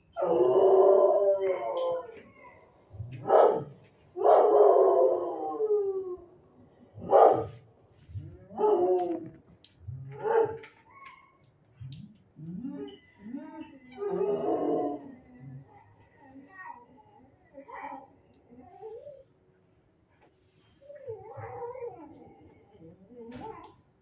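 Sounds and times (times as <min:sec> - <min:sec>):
dogs howling: 0:00.0 - 0:07.6, 0:08.3 - 0:09.4, 0:12.4 - 0:16.4, 0:20.9 - 0:23.8
dogs barking: 0:02.9 - 0:05.4, 0:07.0 - 0:07.6, 0:10.1 - 0:10.8.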